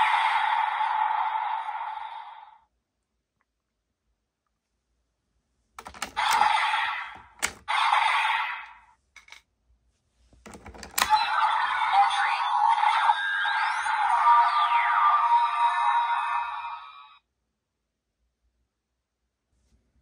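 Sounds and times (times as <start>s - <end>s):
plastic toy clicks: 5.8s - 6.6s, 7.2s - 7.7s
electronic toy music and effects: 11.0s - 17.2s.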